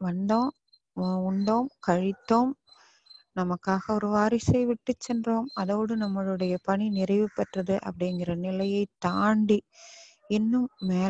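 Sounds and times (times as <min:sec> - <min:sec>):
woman speaking: 0:00.0 - 0:02.6, 0:03.4 - 0:09.7, 0:10.3 - 0:11.0
high-pitched steady tone: 0:04.9 - 0:09.5.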